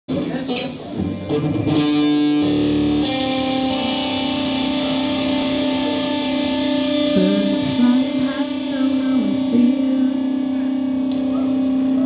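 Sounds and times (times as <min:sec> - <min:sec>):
electric guitars playing: 0:00.1 - 0:12.0
long held note dropping in pitch: 0:02.1 - 0:12.0.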